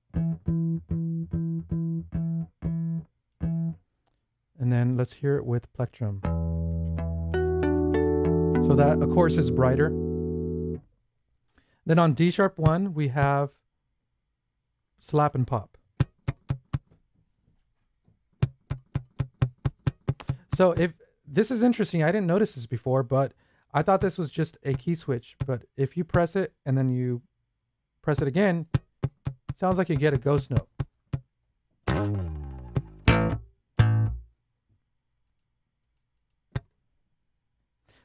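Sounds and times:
slapped bass notes: 0.1s - 3.8s, 6.2s - 10.8s, 31.8s - 34.3s.

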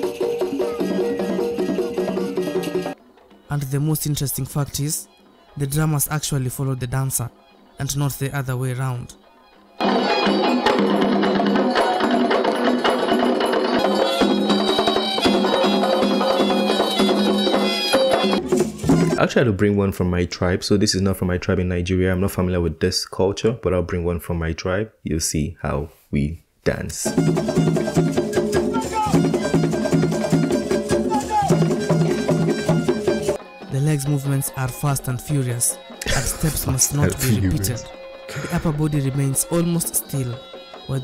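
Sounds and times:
hand drums driving rhythm: 0.0s - 3.0s, 9.8s - 19.2s, 27.0s - 34.4s, 35.8s - 41.0s
held high tone: 36.0s - 38.5s.

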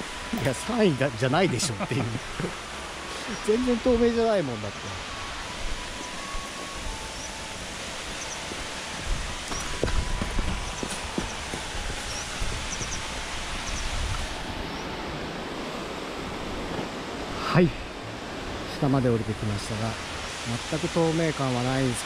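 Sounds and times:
rushing water: 0.0s - 22.0s.

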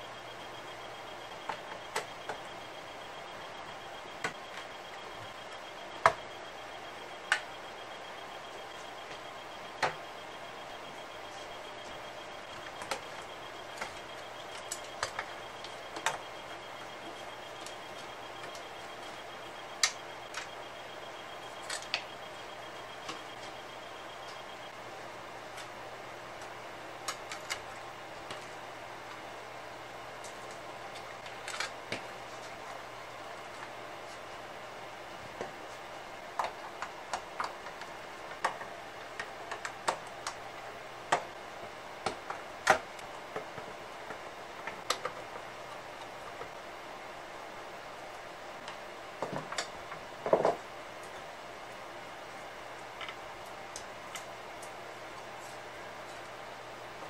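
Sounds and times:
faint high whine: 0.0s - 57.0s
steady hiss and low hum: 0.0s - 57.0s.

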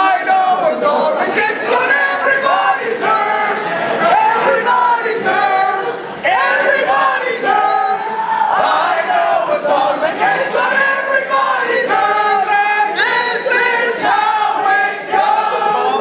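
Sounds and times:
crowd singing together: 0.0s - 16.0s.

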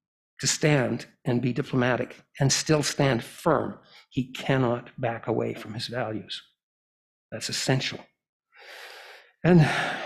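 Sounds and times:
man speaking: 0.4s - 6.4s, 7.4s - 8.0s, 9.5s - 10.0s
man's breathy inhale: 8.6s - 10.0s.

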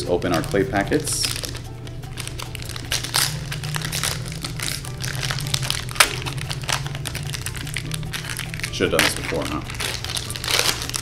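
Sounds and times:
plastic packet crinkling: 0.0s - 11.0s.

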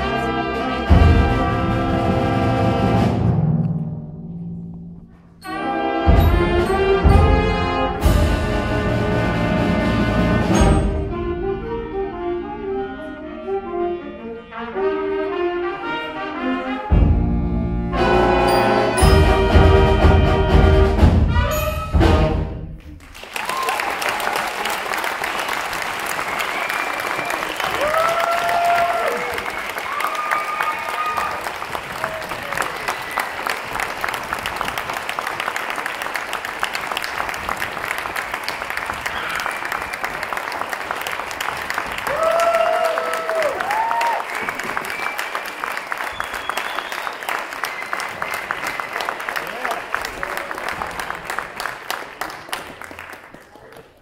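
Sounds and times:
audience applauding: 22.8s - 54.0s
whooping cheers: 23.2s - 24.9s, 26.1s - 33.6s, 39.0s - 40.3s, 42.0s - 50.3s.

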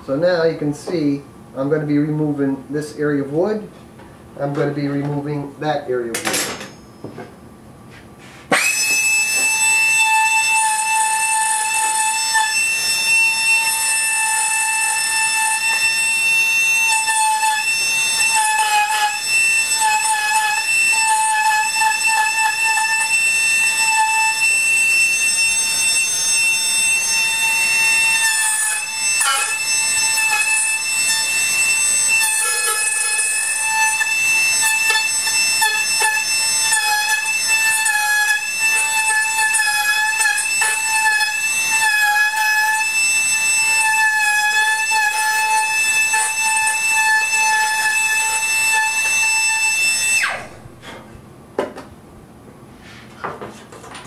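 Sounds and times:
rotary tool whining cutting wood: 8.5s - 51.0s.

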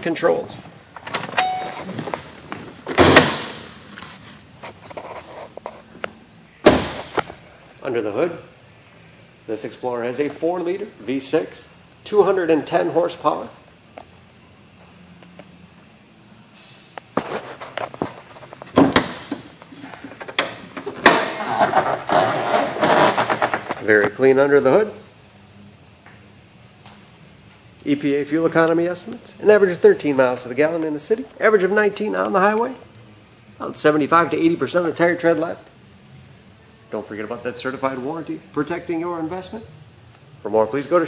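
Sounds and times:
brief tone: 1.4s - 2.0s
car door slamming: 2.9s - 3.7s, 6.6s - 7.2s.

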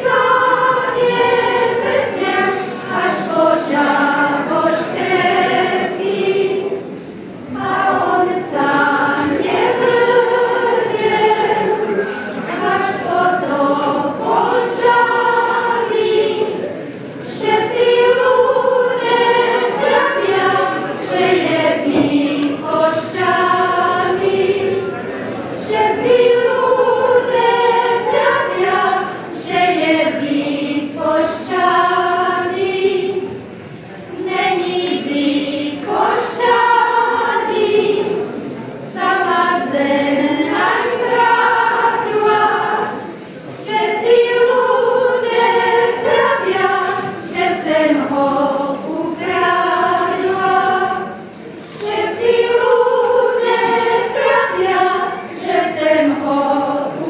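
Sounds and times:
women singing folk song: 0.0s - 16.6s, 17.2s - 24.9s, 25.6s - 33.4s, 34.1s - 57.0s.

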